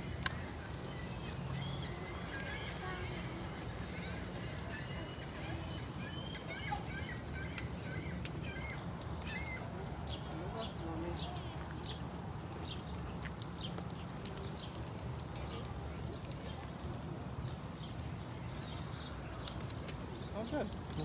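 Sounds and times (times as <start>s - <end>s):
faint distant voices: 0.0s - 21.0s.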